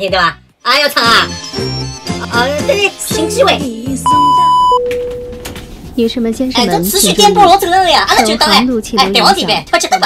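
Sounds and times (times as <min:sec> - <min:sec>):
high electronic test-tone beep: 0:04.0 - 0:05.4.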